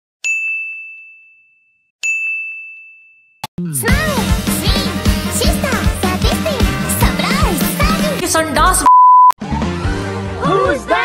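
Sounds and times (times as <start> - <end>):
bell-like ding: 0.3 - 3.4
upbeat music: 3.5 - 8.9.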